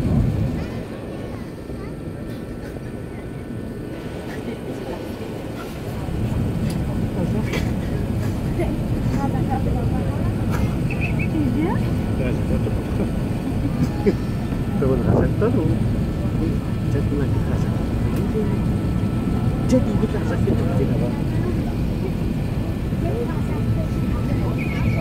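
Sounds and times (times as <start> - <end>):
aircraft cabin engine roar: 0.0 - 25.0
passengers murmuring: 0.0 - 25.0.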